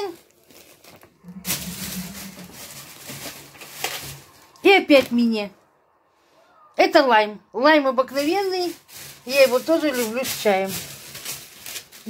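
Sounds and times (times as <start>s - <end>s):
plastic packaging crinkling: 0.0s - 5.1s, 8.2s - 12.0s
low steady hum: 1.1s - 5.9s.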